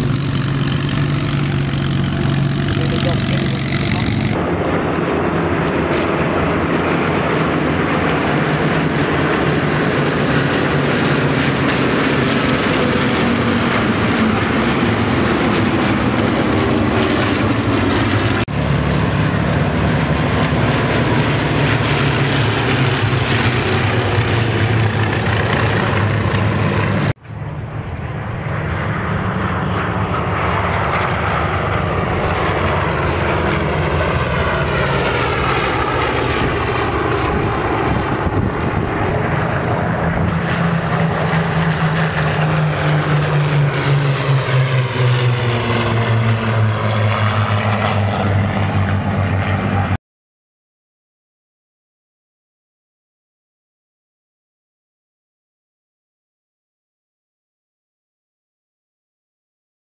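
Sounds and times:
propeller planes flying over: 0.0 - 50.0.

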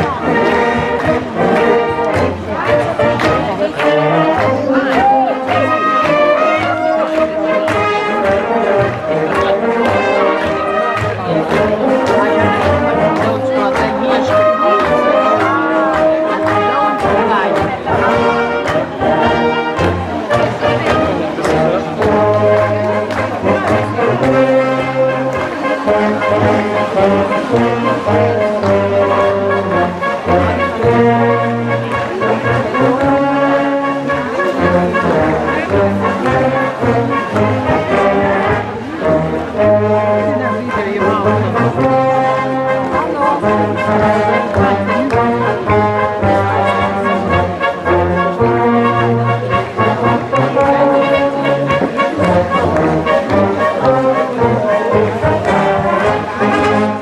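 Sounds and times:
brass band playing dance tune: 0.0 - 57.0.

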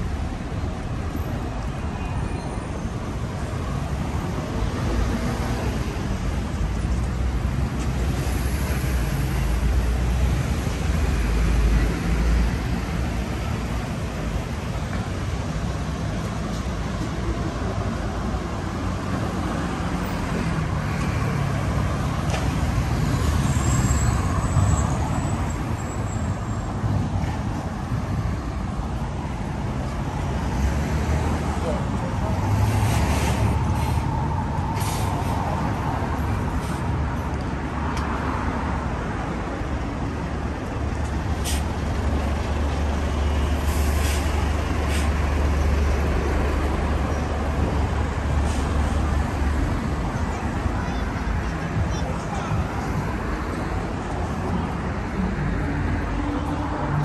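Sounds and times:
heavy vehicle engine rumbling: 0.0 - 57.0
street traffic: 0.0 - 57.0.

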